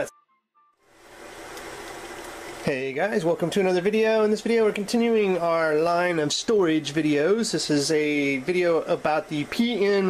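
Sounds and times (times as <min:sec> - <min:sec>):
room hiss: 0:00.8 - 0:10.0.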